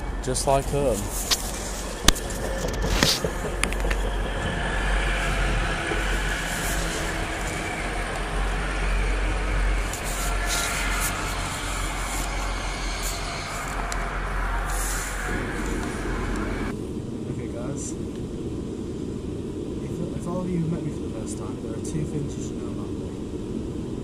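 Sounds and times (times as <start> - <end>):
dull cabin hum: 0.0 - 16.7
sharp train sounds: 0.0 - 16.8
train wheels rumbling on rail: 0.0 - 16.8.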